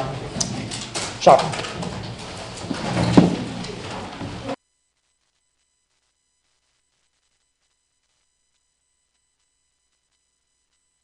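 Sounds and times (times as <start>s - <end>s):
murmur of classroom: 0.0s - 4.6s.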